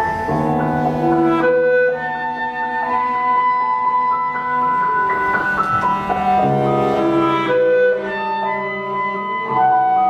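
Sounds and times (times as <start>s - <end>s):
cello: 0.0s - 10.0s
clarinet: 0.0s - 10.0s
piano: 0.0s - 10.0s.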